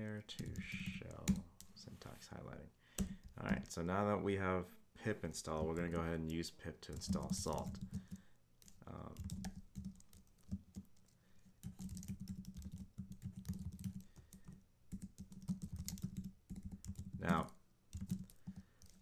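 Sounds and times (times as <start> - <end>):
computer keyboard typing: 0.3 - 1.4, 6.9 - 19.0.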